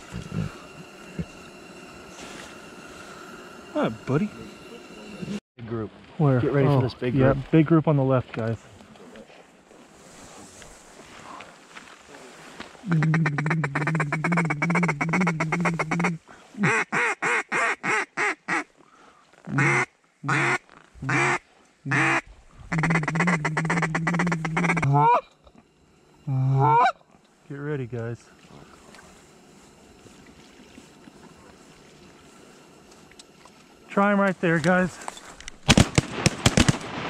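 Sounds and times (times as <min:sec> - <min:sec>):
goose call honks: 0:12.9 - 0:18.7, 0:19.5 - 0:25.2, 0:26.3 - 0:27.0.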